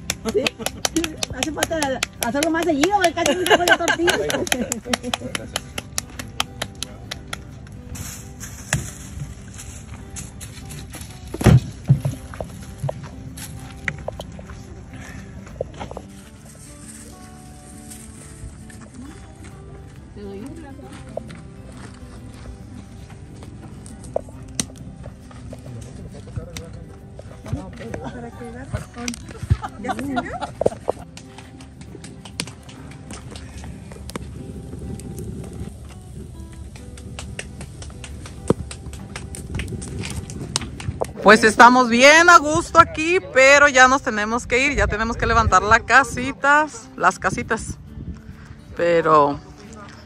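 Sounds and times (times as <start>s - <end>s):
hands patting tortillas: 0.0s - 14.4s, 29.1s - 35.9s, 36.5s - 41.5s
background music: 0.0s - 50.0s.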